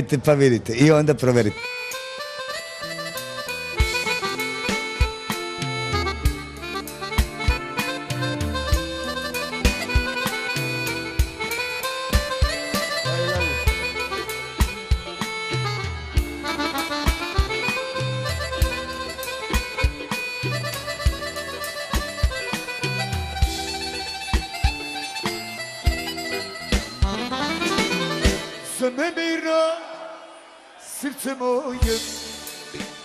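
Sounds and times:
keyboard melodic lead: 0.8s - 30.0s
steady drum beat: 3.8s - 28.5s.

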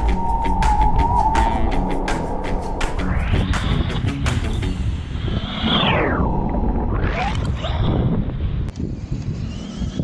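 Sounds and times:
rough low rumble: 0.0s - 8.8s.

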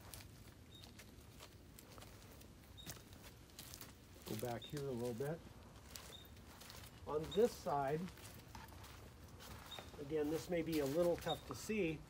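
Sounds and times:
faint footsteps: 0.0s - 12.0s.

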